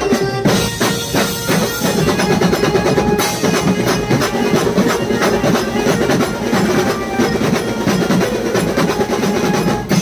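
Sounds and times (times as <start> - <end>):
fast even drum beat: 0.0 - 10.0.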